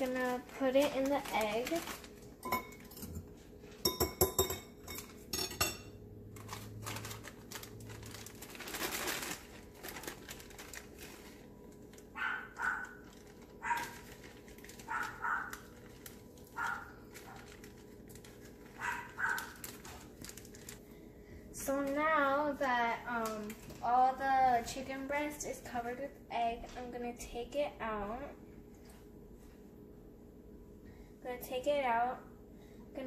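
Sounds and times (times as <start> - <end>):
glass clinking against counter: 3.8 - 5.9.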